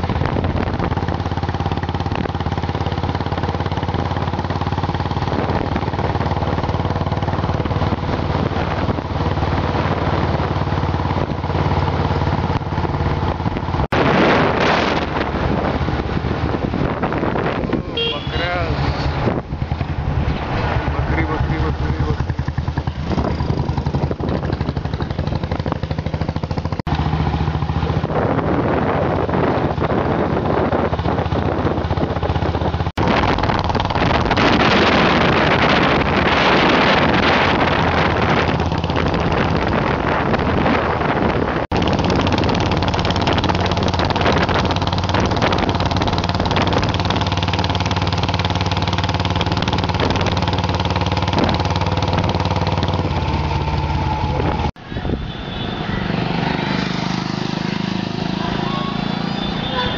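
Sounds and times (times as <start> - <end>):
wind rushing on microphone: 0.0 - 2.5, 5.0 - 58.6
motorcycle engine running: 0.0 - 54.8, 55.9 - 59.9.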